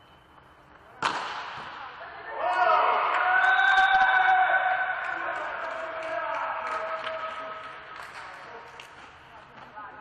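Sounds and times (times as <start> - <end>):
voices shouting drawn-out cheer: 2.2 - 7.7.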